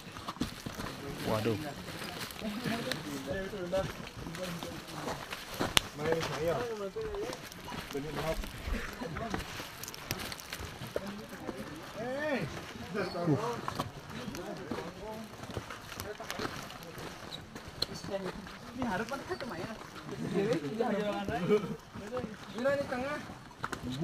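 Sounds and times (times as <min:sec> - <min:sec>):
crowd chatter: 0:00.0 - 0:24.0
footsteps on rocky trail: 0:00.0 - 0:24.0.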